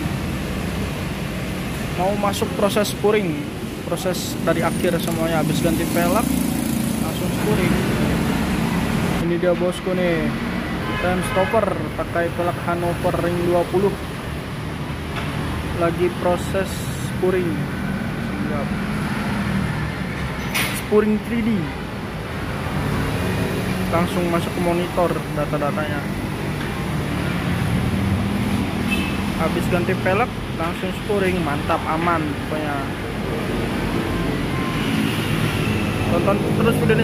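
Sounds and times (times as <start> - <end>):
street traffic noise: 0.0 - 37.0.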